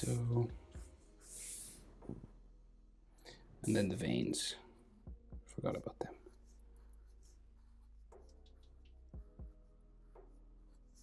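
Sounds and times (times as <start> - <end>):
marker scratching on paper: 0.0 - 1.8, 6.3 - 8.7.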